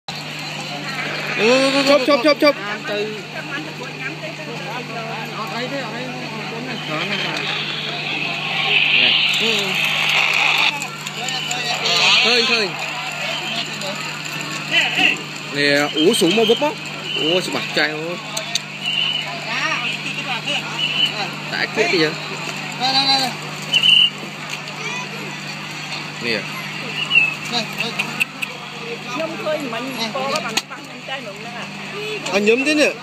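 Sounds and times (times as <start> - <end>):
steady low hum: 0.1 - 30.3
people talking: 0.2 - 33.0.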